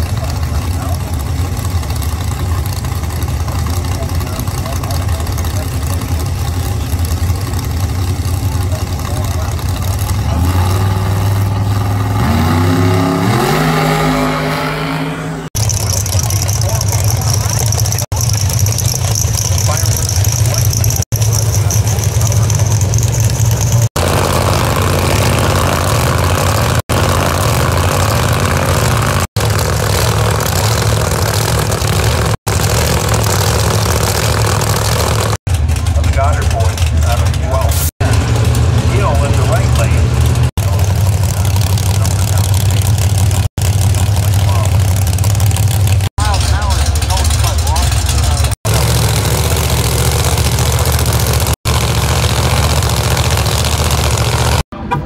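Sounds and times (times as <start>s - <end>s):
loud steady engine running: 0.0s - 55.0s
race car engine revving: 0.0s - 55.0s.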